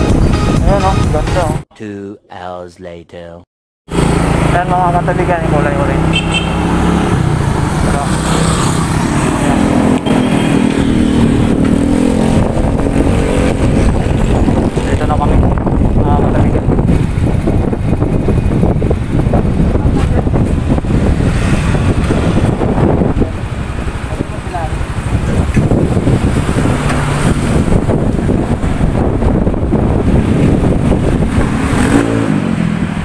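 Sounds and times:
road and wind noise: 0:00.0 - 0:01.6, 0:03.9 - 0:33.0
motorcycle engine running: 0:03.9 - 0:33.0.

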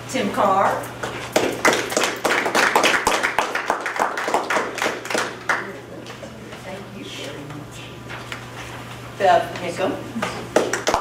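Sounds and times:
people applauding: 0:01.4 - 0:05.8, 0:10.5 - 0:11.0.

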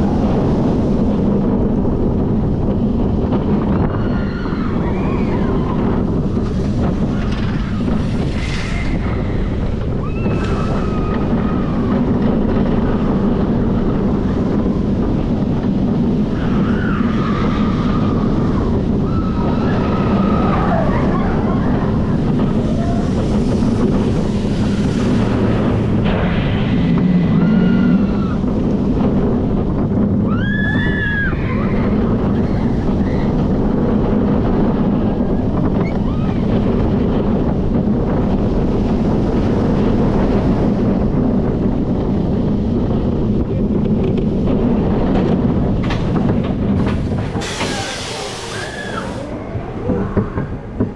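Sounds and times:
roller coaster wheels rumbling: 0:00.0 - 0:50.9
wind noise on microphone: 0:00.0 - 0:50.9.

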